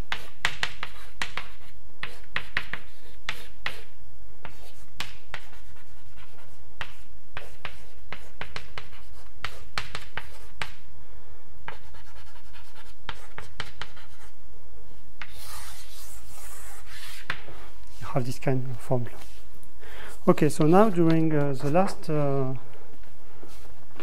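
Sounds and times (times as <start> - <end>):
chalk writing on a blackboard: 0.0 - 10.8, 11.6 - 14.4, 15.2 - 18.4, 19.0 - 19.5.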